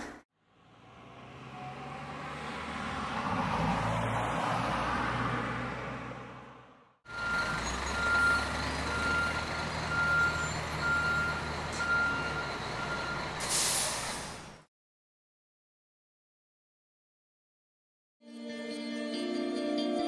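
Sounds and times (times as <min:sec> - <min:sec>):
car passing: 0:00.4 - 0:07.0
truck engine running: 0:07.1 - 0:13.4
reversing alarm beeping: 0:07.1 - 0:13.5
air-brake hiss: 0:13.4 - 0:14.6.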